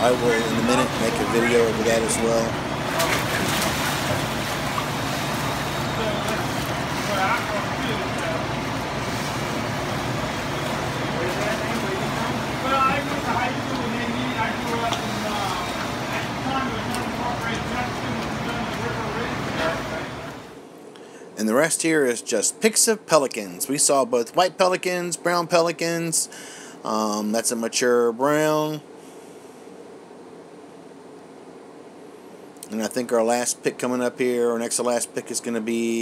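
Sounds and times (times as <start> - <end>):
people talking: 0.0 - 4.7, 5.7 - 9.6, 10.6 - 20.5, 21.4 - 26.3, 26.9 - 28.8, 32.6 - 36.0
steady low hum: 0.0 - 36.0.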